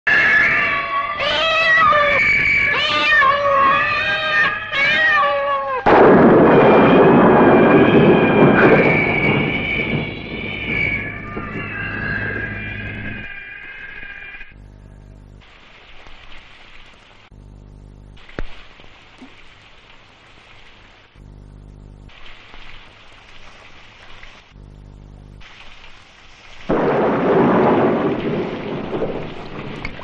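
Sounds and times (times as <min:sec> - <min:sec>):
animal yowls: 0:00.1 - 0:05.9
loud crash: 0:05.9 - 0:13.3, 0:26.7 - 0:29.9
steady high tones: 0:06.3 - 0:15.2.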